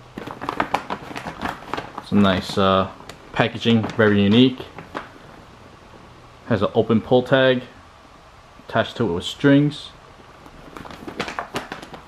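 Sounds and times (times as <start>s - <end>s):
packaging wrap crackling: 0.0s - 5.5s, 10.3s - 12.0s.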